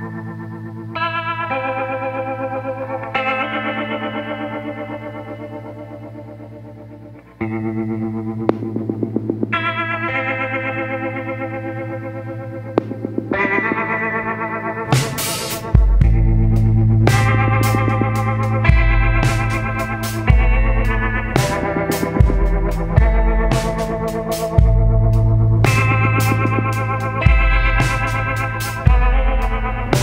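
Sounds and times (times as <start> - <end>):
slow sustained background music: 0.0 - 30.0.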